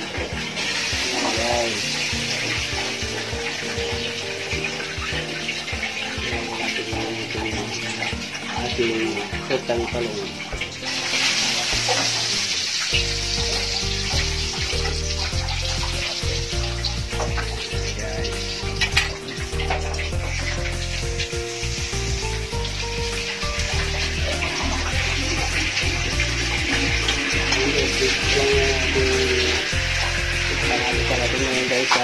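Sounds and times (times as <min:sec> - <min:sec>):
background music with bass: 0:00.0 - 0:32.0
omelette sizzling in oil: 0:00.0 - 0:32.0.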